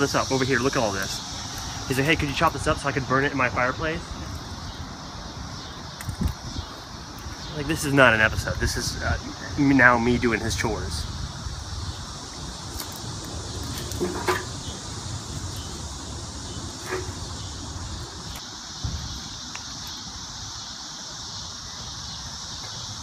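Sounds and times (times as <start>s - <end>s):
low outdoor rumble: 0.0s - 18.4s
high insect buzz: 0.0s - 23.0s.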